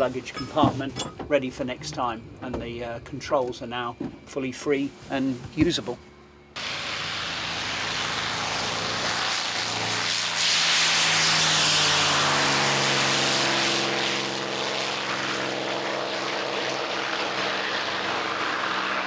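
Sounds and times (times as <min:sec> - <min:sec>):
propeller aircraft taking off: 0:06.6 - 0:19.0.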